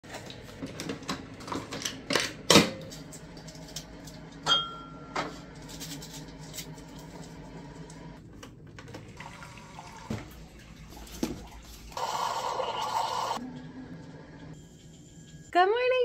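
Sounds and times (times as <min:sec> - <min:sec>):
coffee maker humming: 0:00.0 - 0:15.5.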